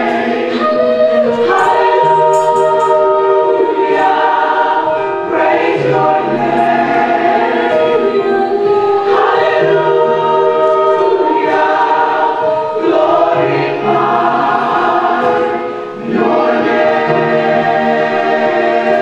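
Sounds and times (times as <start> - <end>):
gospel choir singing: 0.0 - 19.0.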